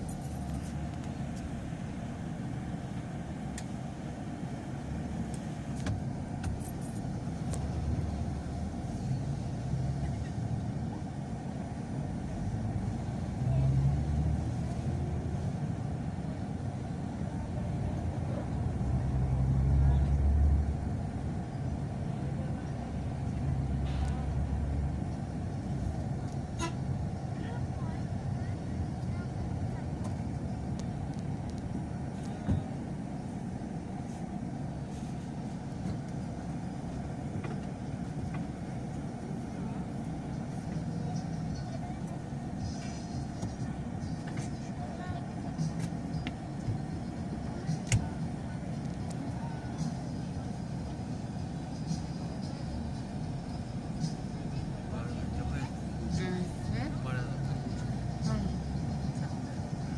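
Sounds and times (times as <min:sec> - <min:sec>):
vehicle engine and road noise: 0:00.0 - 0:59.9.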